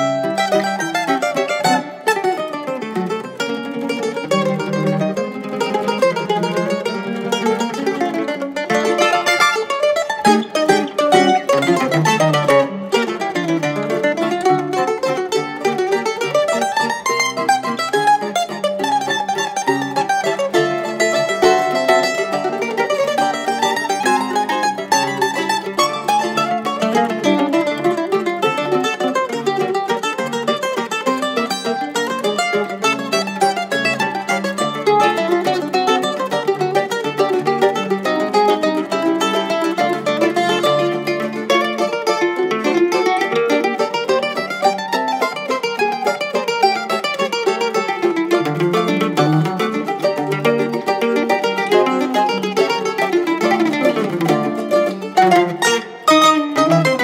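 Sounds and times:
mandolins playing a waltz: 0:00.0 - 0:57.0.

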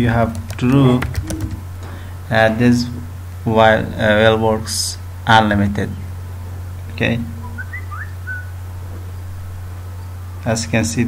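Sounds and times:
steady low hum: 0:00.0 - 0:11.0
short whistled chirps: 0:07.5 - 0:08.5.

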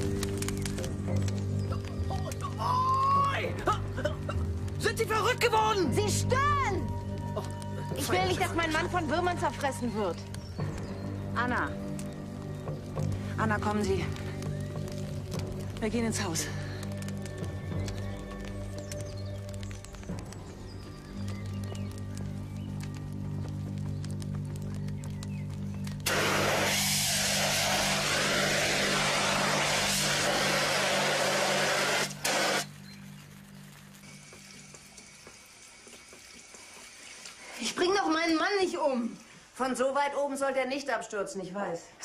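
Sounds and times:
music with low held chords: 0:00.0 - 0:36.6
fire extinguisher hissing: 0:26.0 - 0:32.8.

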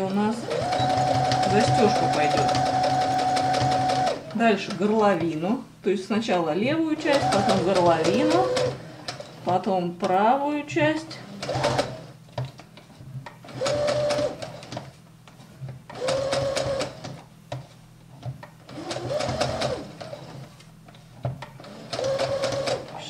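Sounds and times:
sewing machine stitching: 0:00.0 - 0:04.9, 0:07.0 - 0:09.5, 0:11.2 - 0:12.1, 0:13.4 - 0:14.8, 0:15.9 - 0:17.2, 0:18.7 - 0:20.4, 0:21.6 - 0:23.0.

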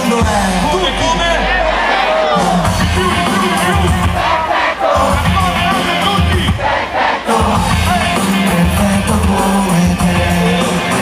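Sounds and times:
crowd shouting and singing along: 0:00.0 - 0:11.0
heavy bass line: 0:00.0 - 0:11.0
hip-hop music: 0:00.0 - 0:11.0.

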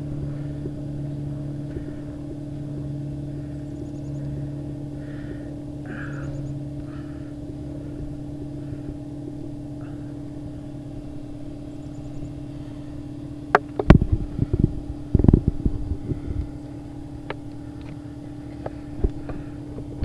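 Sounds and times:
air compressor running: 0:00.0 - 0:20.0.

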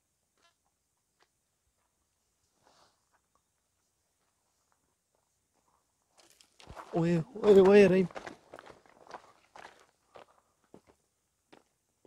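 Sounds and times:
footsteps on sandy pebbly ground: 0:05.1 - 0:11.7.

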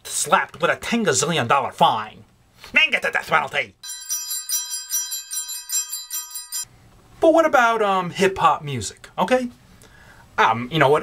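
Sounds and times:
rapid bell ringing: 0:03.8 - 0:06.7.

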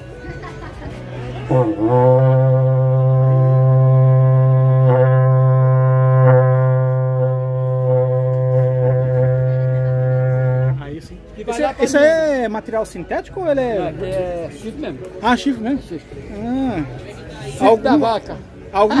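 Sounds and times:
cattle horn long low note: 0:01.5 - 0:10.9.

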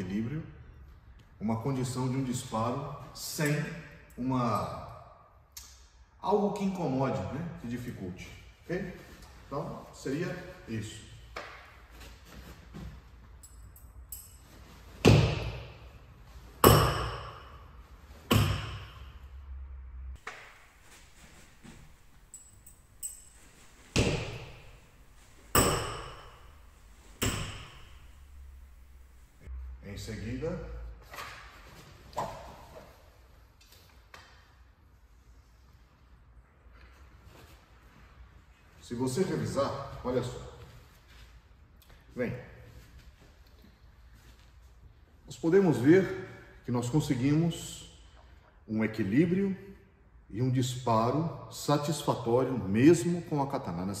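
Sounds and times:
shuriken striking target: 0:18.3 - 0:19.2, 0:23.9 - 0:24.9, 0:25.5 - 0:26.6, 0:27.2 - 0:28.3
shuriken release and strike: 0:23.0 - 0:28.6.

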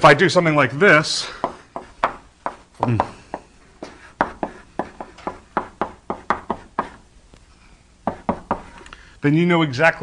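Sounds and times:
chalk tapping on blackboard: 0:01.4 - 0:07.0, 0:08.0 - 0:08.8.

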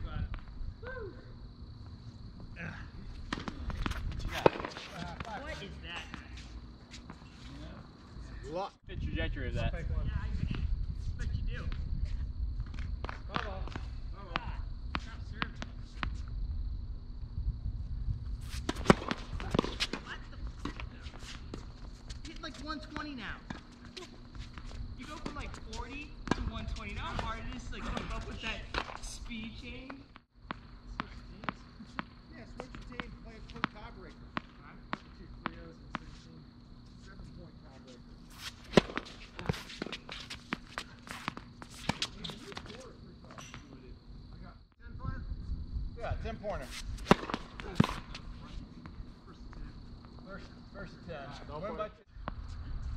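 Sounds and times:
tennis balls struck by rackets: 0:03.2 - 0:06.4, 0:18.4 - 0:21.7, 0:22.9 - 0:29.1, 0:29.9 - 0:36.6, 0:38.2 - 0:43.8, 0:46.7 - 0:49.2
tennis balls bouncing on court: 0:03.2 - 0:07.1, 0:18.5 - 0:29.1, 0:38.3 - 0:43.7, 0:47.0 - 0:49.0.

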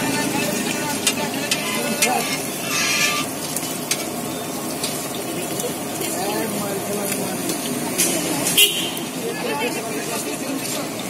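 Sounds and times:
background voices talking: 0:00.0 - 0:11.0
street noise hum: 0:00.0 - 0:11.0.

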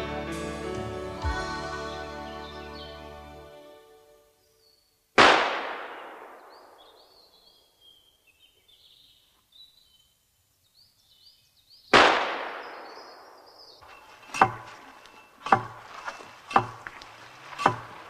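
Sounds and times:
birds chirping faintly: 0:01.8 - 0:05.2, 0:05.8 - 0:18.0
echoing gunshots: 0:05.2 - 0:07.2, 0:11.9 - 0:16.9
sharp knock: 0:14.3 - 0:17.0, 0:17.6 - 0:18.0.

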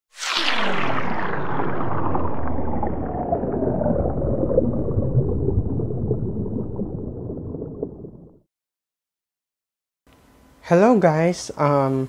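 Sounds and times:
sinking whoosh with crackling rumble: 0:00.1 - 0:08.4.

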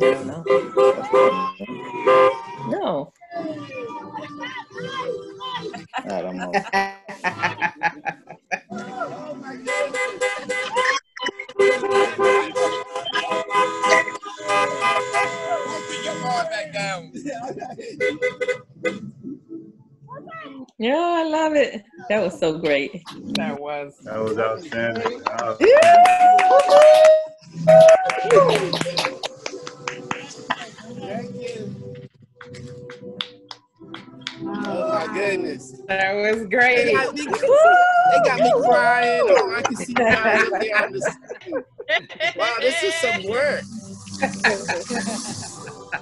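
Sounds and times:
car horns honking: 0:00.0 - 0:02.8, 0:09.5 - 0:19.3
people's voices: 0:00.0 - 0:46.0
hand claps: 0:24.7 - 0:30.7, 0:32.0 - 0:34.9, 0:39.4 - 0:40.4.

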